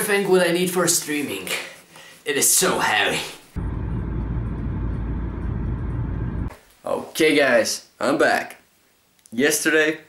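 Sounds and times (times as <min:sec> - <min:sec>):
road vehicle rumble from inside: 0:03.6 - 0:06.5.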